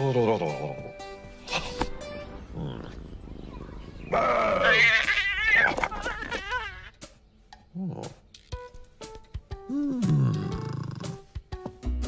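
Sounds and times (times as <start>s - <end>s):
cartoon cat yowling: 4.1s - 6.9s.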